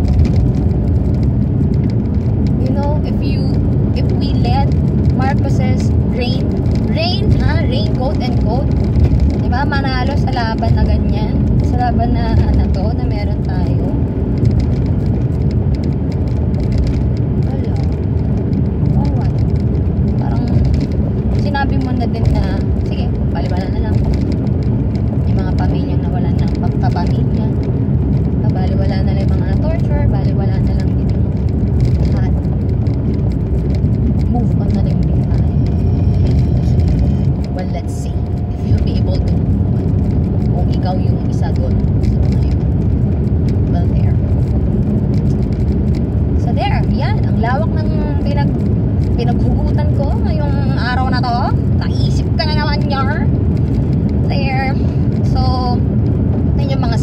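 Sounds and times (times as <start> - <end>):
car cabin road and engine rumble: 0.0 - 57.0
woman talking: 2.5 - 14.0, 17.4 - 18.0, 18.9 - 19.4, 20.2 - 24.2, 25.3 - 27.6, 28.4 - 31.4, 32.0 - 32.5, 34.2 - 39.4, 40.4 - 42.8, 43.7 - 44.2, 46.4 - 53.3, 54.2 - 55.9, 56.6 - 57.0.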